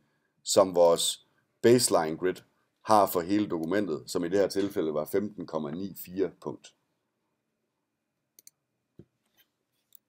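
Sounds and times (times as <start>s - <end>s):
faint computer mouse clicks: 8.4s - 10.0s.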